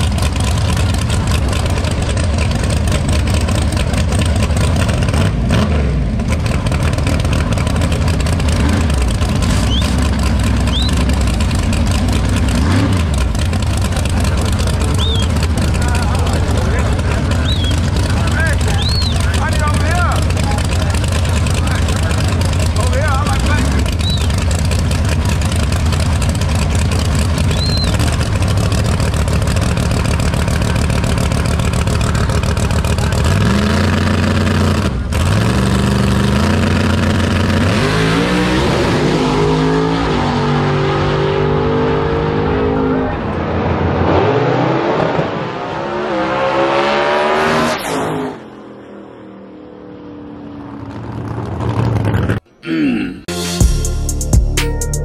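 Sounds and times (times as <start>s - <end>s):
drag race car engines revving: 0.0s - 52.6s.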